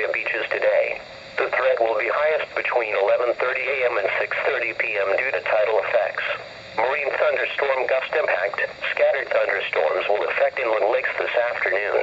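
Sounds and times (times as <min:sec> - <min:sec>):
broadcast voice through small speaker: 0:00.0 - 0:12.0.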